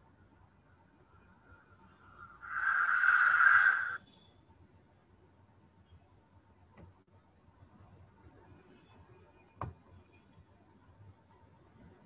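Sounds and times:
hiss-like swell: 1.4 - 4.0.

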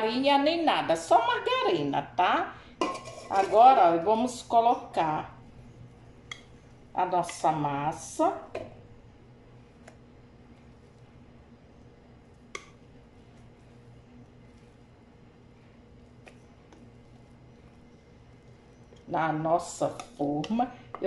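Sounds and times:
steady low hum: 0.0 - 21.0
whisk clicking against bowl: 19.8 - 21.0.

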